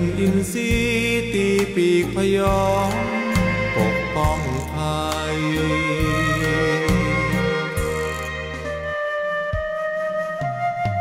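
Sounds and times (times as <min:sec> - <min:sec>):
person singing: 0:00.0 - 0:08.3.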